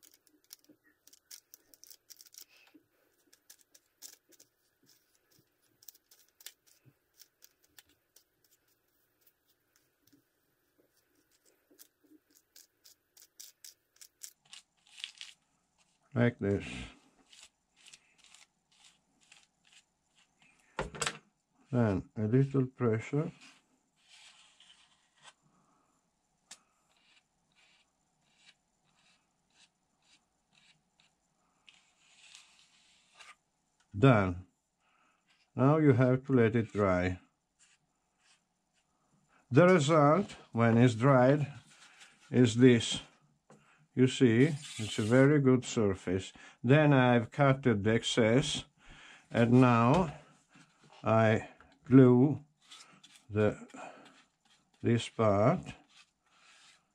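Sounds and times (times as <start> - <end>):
brush scratching on tissue paper: 17.2 - 20.4, 26.9 - 31.1
faint scratchy rustles: 41.4 - 43.1, 52.5 - 56.9.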